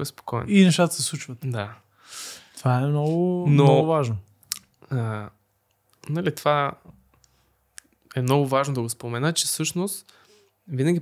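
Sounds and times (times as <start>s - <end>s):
man speaking: 0.0s - 1.8s, 2.6s - 4.3s, 4.9s - 5.4s, 10.7s - 11.0s.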